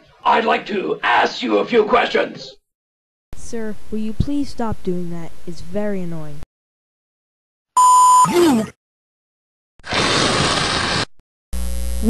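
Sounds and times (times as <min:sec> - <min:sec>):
tv static hiss: 0:11.6 - 0:12.0.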